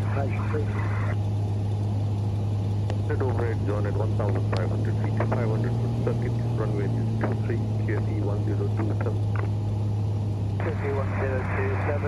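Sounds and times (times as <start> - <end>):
radio transmission with voice: 0.0 - 1.2, 3.1 - 9.5, 10.6 - 12.0
aircraft engine drone: 0.0 - 12.0.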